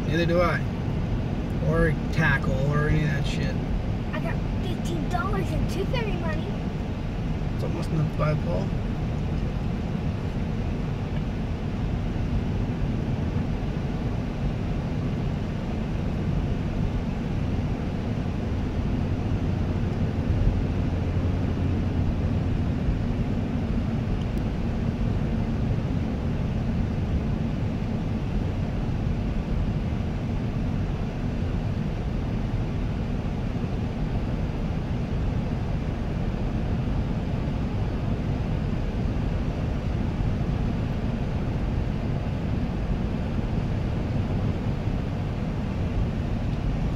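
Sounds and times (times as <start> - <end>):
car engine and tyre rumble: 0.0 - 46.9.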